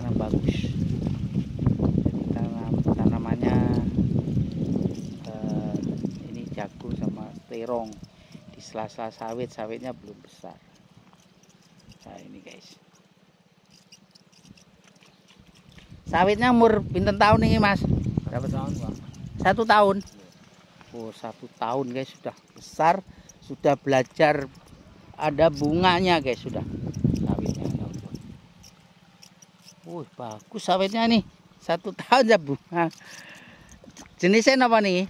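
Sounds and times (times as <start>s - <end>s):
diesel pump engine throbbing: 0.0s - 34.3s.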